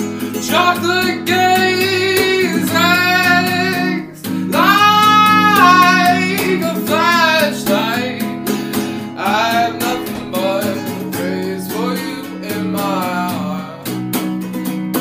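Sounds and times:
guitar chords: 0.0s - 15.0s
person singing: 0.5s - 8.3s, 9.2s - 13.9s.

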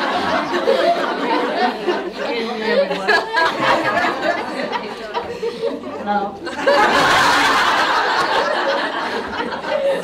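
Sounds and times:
people talking: 0.0s - 7.1s
laughter: 0.0s - 10.0s.

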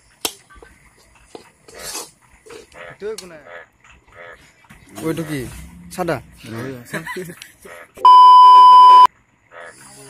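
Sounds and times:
spatula scraping in a wok: 0.9s - 3.0s.

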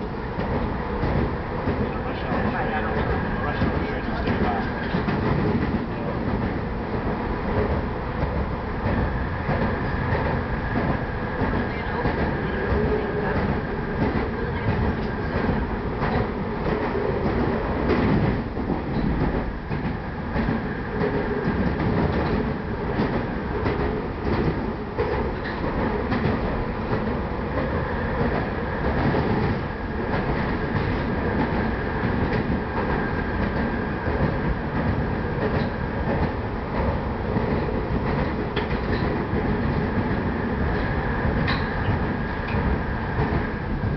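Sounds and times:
train wheels rumbling on rail: 0.0s - 43.9s.

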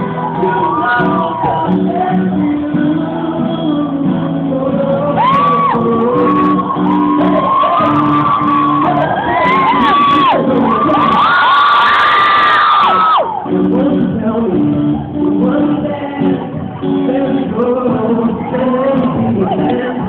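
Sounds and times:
audience screaming and cheering: 0.0s - 20.0s
live pop song with guitar: 0.0s - 20.0s.

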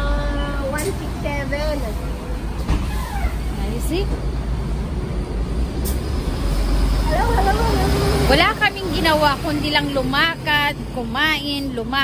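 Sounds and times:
bus engine rumbling: 0.0s - 12.0s
women's voices: 7.0s - 12.0s.

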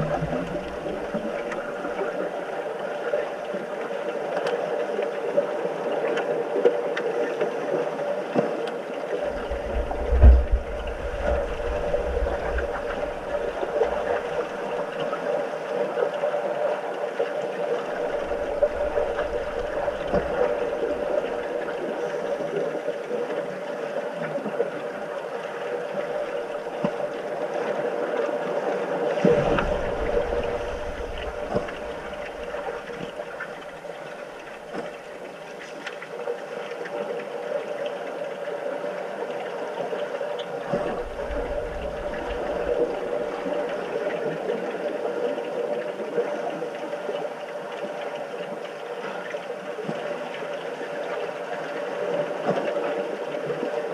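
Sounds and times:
bubbling and rushing water: 0.0s - 53.9s
underwater hum: 0.0s - 53.9s
low rumbling surge: 9.3s - 14.6s, 18.0s - 21.5s, 29.3s - 33.4s.

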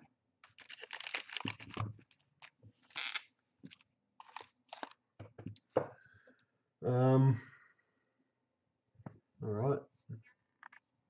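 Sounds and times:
foil packets crinkling: 0.4s - 5.0s.

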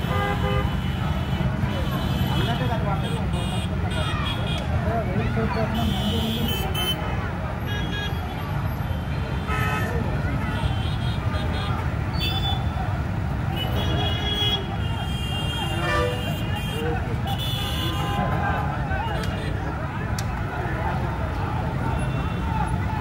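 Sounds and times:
vehicle horns tooting: 0.0s - 4.7s, 5.6s - 19.7s, 21.7s - 23.0s
crowd voices and shouting: 0.0s - 23.0s
traffic rumble: 0.0s - 23.0s.

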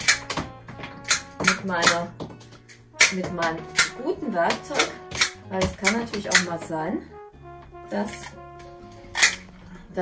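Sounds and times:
background music of sustained notes: 0.0s - 10.0s
garden shears snipping stems: 1.0s - 6.7s, 8.0s - 9.5s.

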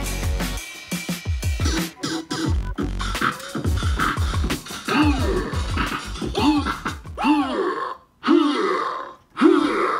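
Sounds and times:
electronic keyboard voice sample: 1.6s - 6.8s.

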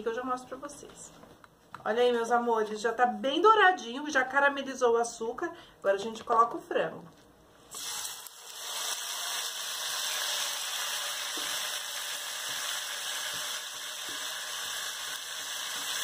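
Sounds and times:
chicken sizzling in hot fat: 7.7s - 16.0s.

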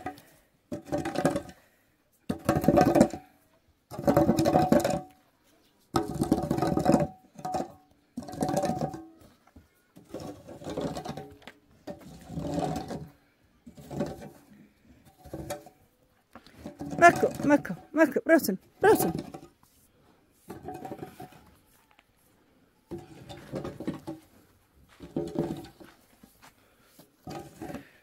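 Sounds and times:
metal hoe scraping dirt floor: 0.0s - 5.2s, 5.9s - 22.0s, 22.9s - 28.0s.

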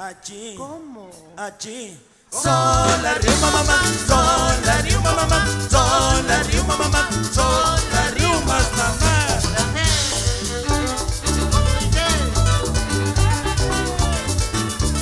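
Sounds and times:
saxophone melody: 2.6s - 15.0s.

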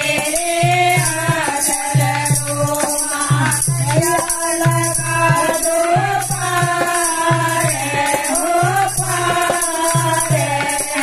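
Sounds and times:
percussion beat with jingling: 0.0s - 11.0s
women singing into microphone: 0.0s - 11.0s.

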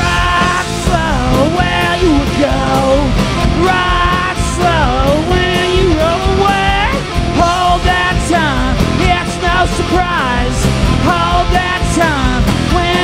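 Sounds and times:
lead vocal singing: 0.0s - 13.0s
live rock band playing: 0.0s - 13.0s.

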